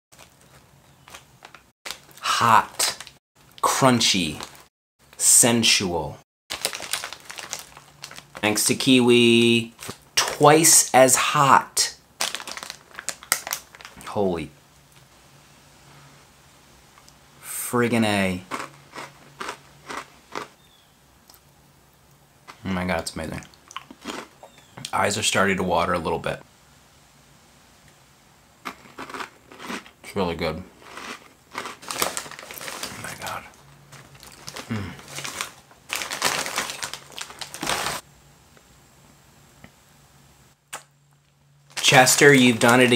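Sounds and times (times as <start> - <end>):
plastic snack bag crinkling: 0.1 - 5.3, 6.5 - 9.0, 9.6 - 10.8, 12.2 - 14.1, 30.8 - 38.0, 41.6 - 42.9
faint steady hum: 0.2 - 42.9.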